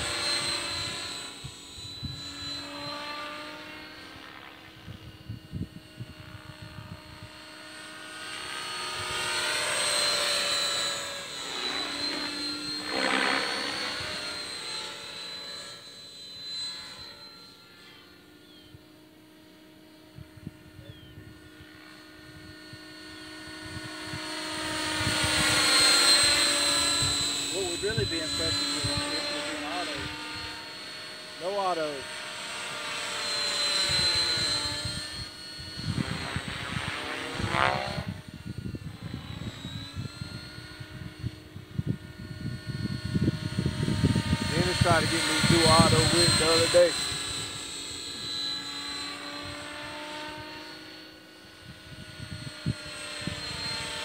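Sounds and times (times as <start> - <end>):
rc helicopter high whine: 0.0 - 54.0.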